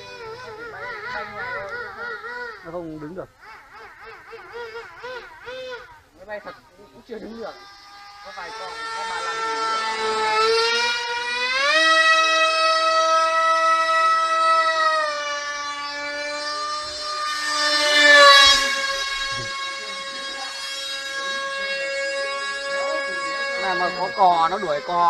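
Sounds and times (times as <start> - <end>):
model jet electric motor whining: 0.0 - 3.2, 4.3 - 25.0.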